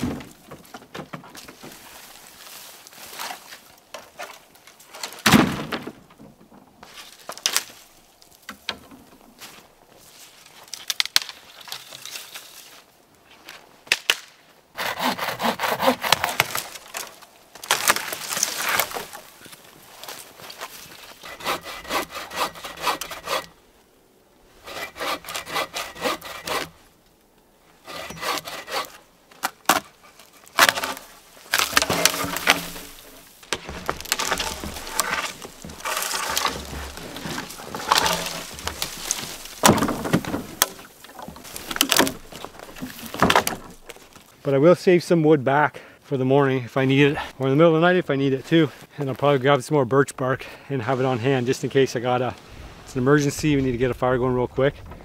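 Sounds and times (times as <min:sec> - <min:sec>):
wood cracking: 0:00.0 - 0:12.8, 0:13.4 - 0:23.6, 0:24.6 - 0:44.4
hand saw cutting wood: 0:14.8 - 0:16.7, 0:21.1 - 0:23.6, 0:24.6 - 0:26.8, 0:27.8 - 0:29.0, 0:29.7 - 0:33.1, 0:33.8 - 0:43.8.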